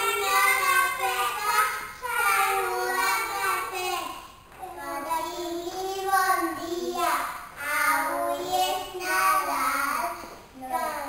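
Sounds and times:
children singing together: 0.0s - 11.0s.

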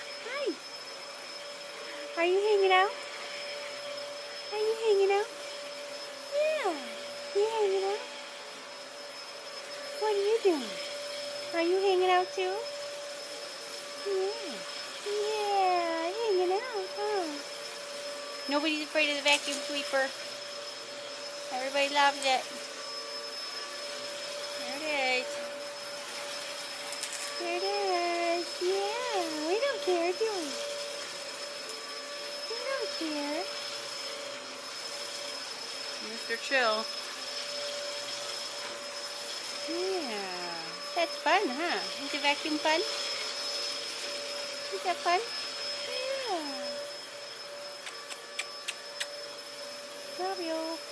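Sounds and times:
vacuum cleaner running: 0.0s - 50.9s.

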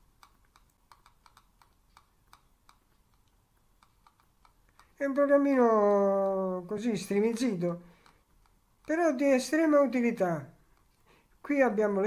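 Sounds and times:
faint computer clicking: 0.0s - 12.0s.

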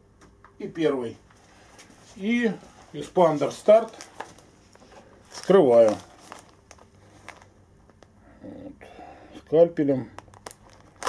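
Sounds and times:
plastic packet crinkling: 2.2s - 8.1s, 10.1s - 11.0s.

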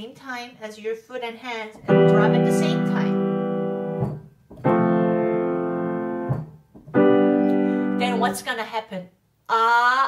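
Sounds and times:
piano chords in the bass: 1.8s - 8.4s.

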